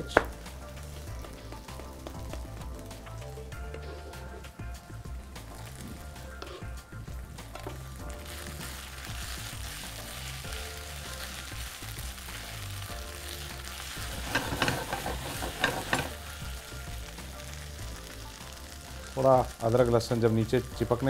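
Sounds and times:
food sizzling in hot oil: 0:00.0 - 0:21.0
spatula scraping and knocking pan: 0:14.0 - 0:16.2.

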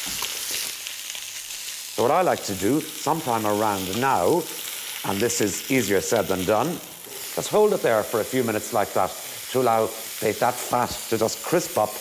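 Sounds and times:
steak sizzling in grill pan: 0:00.0 - 0:12.0.

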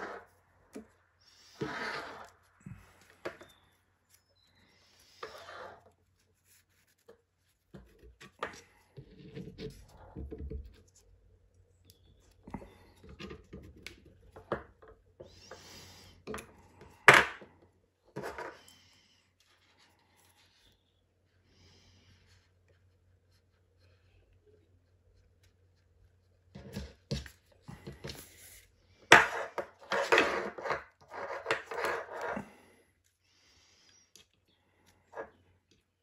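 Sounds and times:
cord rubbing and scraping: 0:00.0 - 0:21.0, 0:25.2 - 0:33.2.

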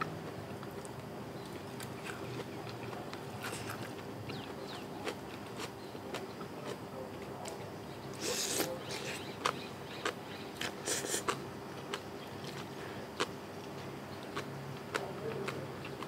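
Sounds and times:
person chewing: 0:01.5 - 0:06.8, 0:08.2 - 0:13.8
short hissing bursts: 0:08.2 - 0:08.7, 0:10.8 - 0:11.3.

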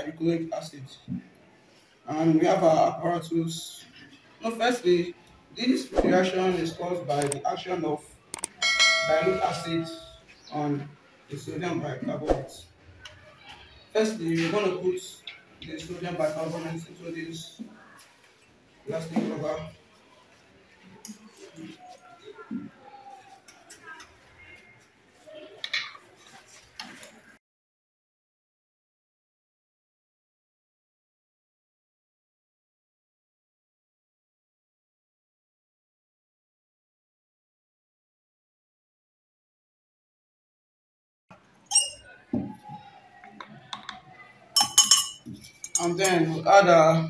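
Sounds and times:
faint murmur of voices: 0:00.0 - 0:27.4, 0:41.4 - 0:47.0
clicks: 0:08.3 - 0:08.6
metal spoon clinking on beaker: 0:08.4 - 0:09.9, 0:41.7 - 0:42.1, 0:44.6 - 0:46.2.

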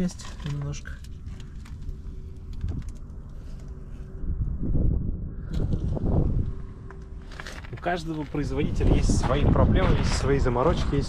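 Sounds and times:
faint steady hum: 0:00.0 - 0:09.7
wind buffeting microphone: 0:04.0 - 0:11.0.

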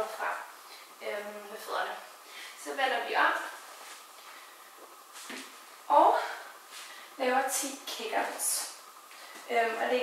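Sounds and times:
woman's voice: 0:00.0 - 0:03.6, 0:05.9 - 0:06.5, 0:07.2 - 0:08.8, 0:09.5 - 0:10.0
rustle on exercise mat: 0:03.3 - 0:09.9.

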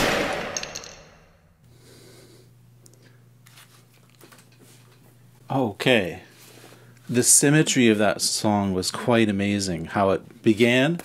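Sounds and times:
drum kit hit: 0:00.0 - 0:01.2
faint steady hum: 0:00.0 - 0:11.0.

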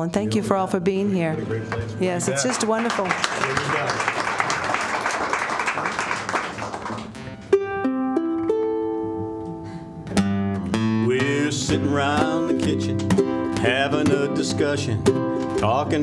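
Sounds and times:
audience applause: 0:02.2 - 0:07.4
acoustic guitar strumming: 0:07.0 - 0:16.0
ukulele: 0:07.1 - 0:16.0.

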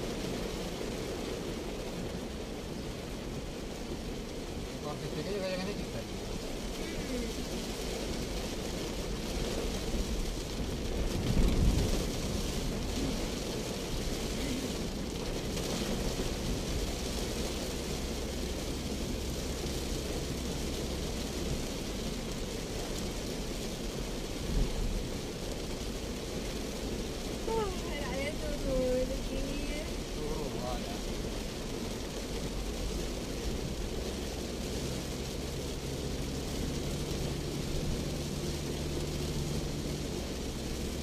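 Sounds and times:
heavy rain on car roof: 0:00.0 - 0:41.0
road and engine noise: 0:00.0 - 0:41.0.

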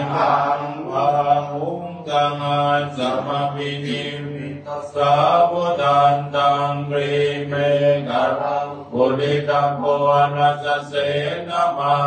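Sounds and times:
monk chanting monotone: 0:00.0 - 0:12.0.

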